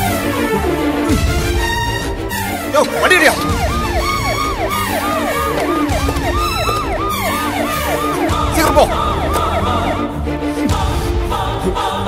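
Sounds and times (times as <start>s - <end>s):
police siren yelping: 2.8s - 10.3s
background music with low beat: 2.8s - 11.6s.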